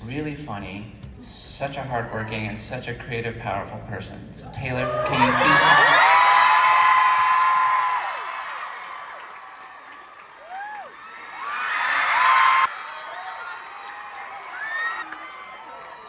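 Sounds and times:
audience screaming and cheering: 4.6 - 16.0.

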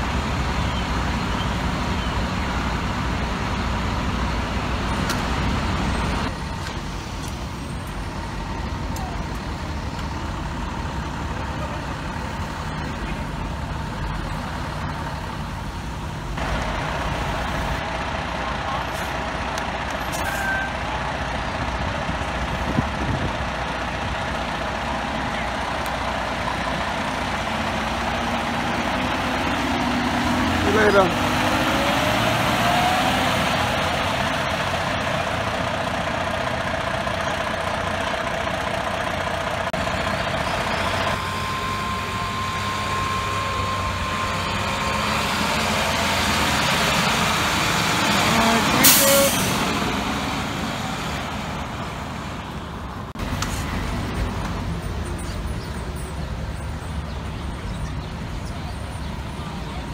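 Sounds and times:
fire engine diesel engines: 0.0 - 59.9.

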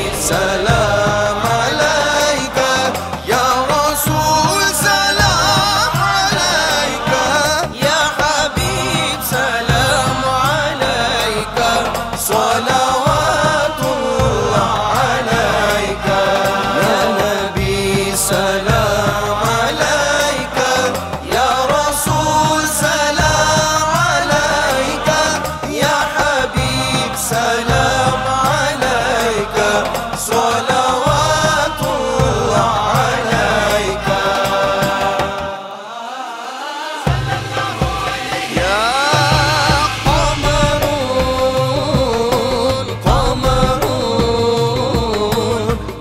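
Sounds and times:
low rhythmic backing: 0.0 - 35.4, 37.1 - 46.0
backing choir: 0.0 - 46.0
men singing devotional song: 0.0 - 46.0.

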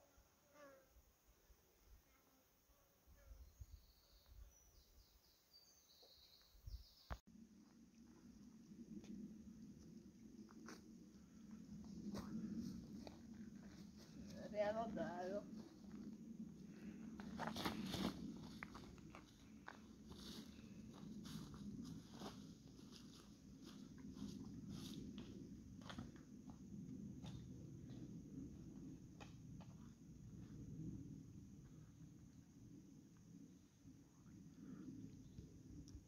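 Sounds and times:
footsteps on dry leaves and stones: 17.2 - 25.2.

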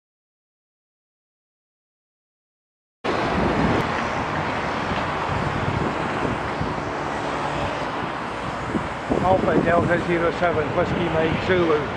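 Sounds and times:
passing cars: 3.1 - 11.9
wind rumbling on microphone: 3.1 - 11.9.

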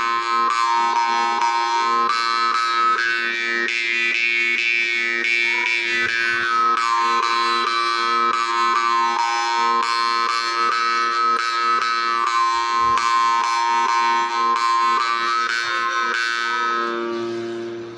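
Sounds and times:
jaw harp buzzing drone: 0.0 - 17.9.

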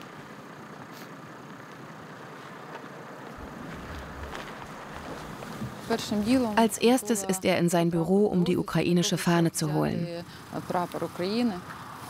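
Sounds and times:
wind: 0.0 - 12.0
low rumble: 3.3 - 6.9.

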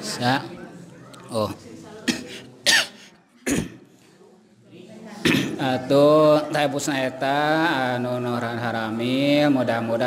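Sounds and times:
man coughing: 2.1 - 3.8.

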